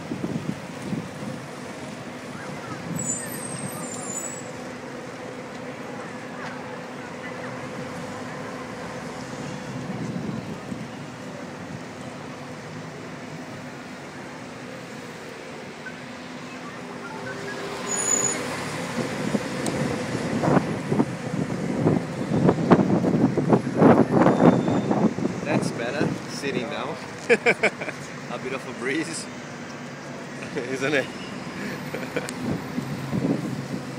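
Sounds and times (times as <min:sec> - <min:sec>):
wind buffeting microphone: 0:00.0 - 0:03.0, 0:09.6 - 0:11.9, 0:18.8 - 0:26.3, 0:32.4 - 0:33.9
bus engine hum: 0:00.0 - 0:33.9
city traffic: 0:00.0 - 0:33.9.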